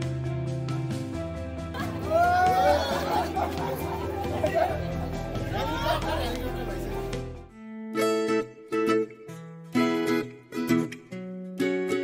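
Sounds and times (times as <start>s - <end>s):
background music with low bass: 0.0s - 7.6s.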